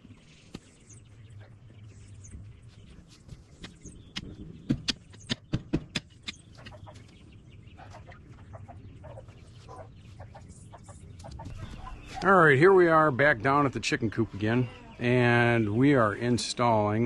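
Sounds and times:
chickens clucking: 3.6s - 16.4s.

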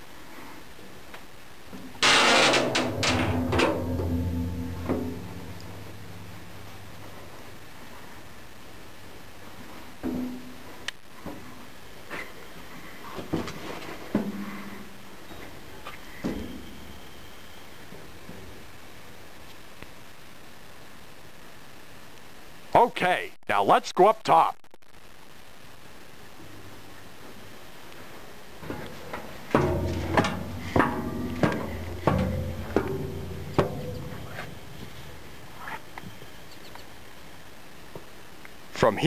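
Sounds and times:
footsteps on steel deck: 1.8s - 7.6s, 28.6s - 35.6s
steel door clanging: 2.0s - 7.2s, 28.7s - 35.4s.

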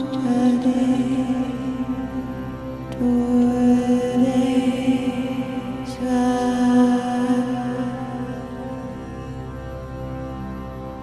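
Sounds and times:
meditative drone tone: 0.0s - 11.0s.

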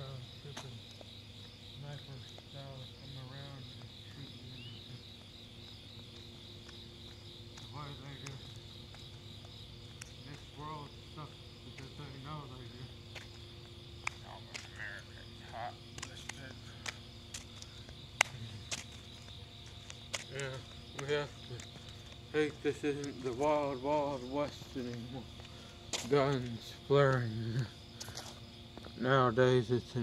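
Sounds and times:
faint low hum: 0.0s - 30.0s
night insects trilling: 0.0s - 30.0s.

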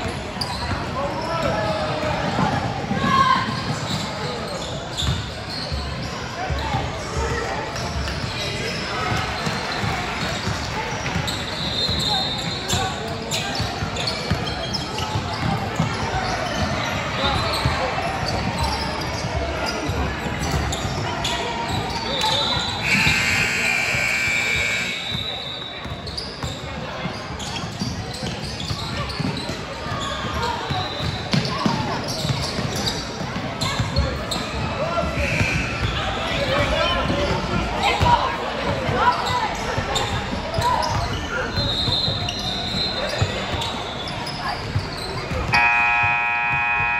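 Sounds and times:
voices in a hall: 0.0s - 46.9s
scoreboard buzzer horn: 22.8s - 25.2s, 45.5s - 46.9s.

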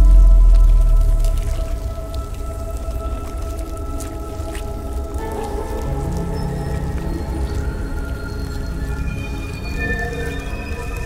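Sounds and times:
deep sub-bass boom: 0.0s - 1.9s
faint drip-like clicks: 0.0s - 11.0s.

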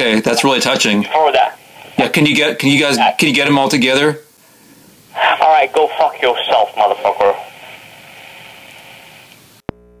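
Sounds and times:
faint steady hum: 0.0s - 10.0s
telephone line hissing: 4.4s - 9.9s.

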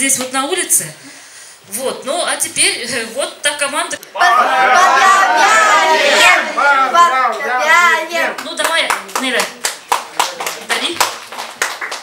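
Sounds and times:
voices: 2.4s - 9.5s
people clapping: 7.0s - 12.0s.

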